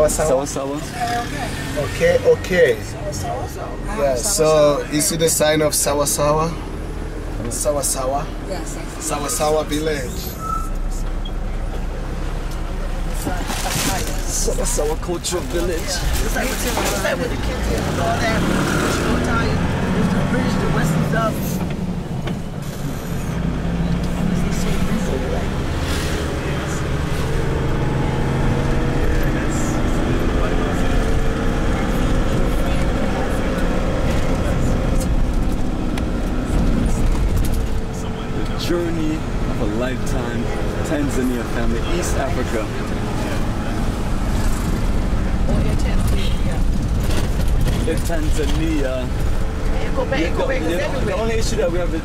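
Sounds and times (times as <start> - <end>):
van engine and tyre rumble: 0.0 - 52.0.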